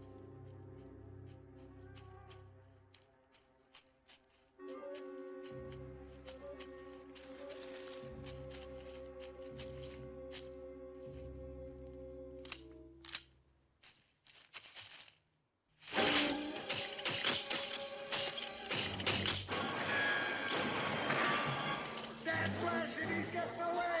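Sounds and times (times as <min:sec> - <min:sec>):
frantic orchestral music: 0:04.6 - 0:12.7, 0:15.9 - 0:24.0
metal traps snapping shut: 0:15.9 - 0:19.6.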